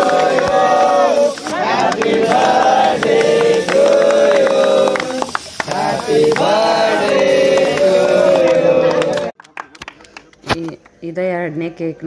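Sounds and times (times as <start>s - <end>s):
men singing and cheering: 0.0s - 9.3s
hand claps: 0.0s - 11.0s.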